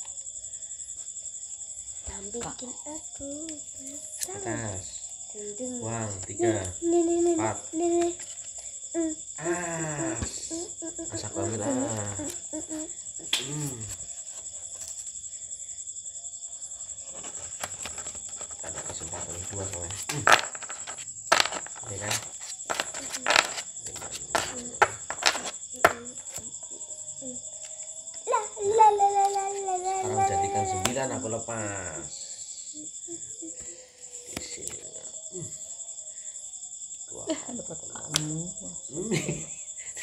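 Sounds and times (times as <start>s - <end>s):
crickets chirring: 0.0s - 40.0s
murmuring voices: 28.3s - 33.8s.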